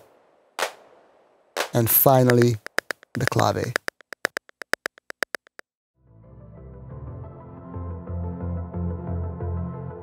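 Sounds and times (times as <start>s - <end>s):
drum machine clave clicks: 1.6s - 5.7s.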